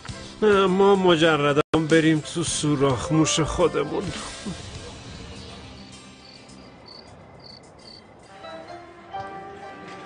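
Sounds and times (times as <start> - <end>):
crickets chirping: 4.6 - 8.8.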